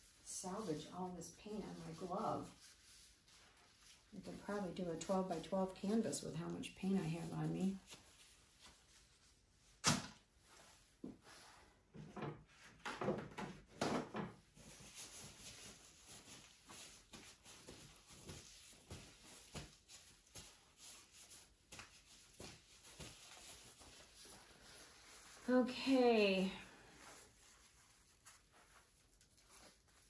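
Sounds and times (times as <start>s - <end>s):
small knocks and rustles: 10.6s - 24.4s.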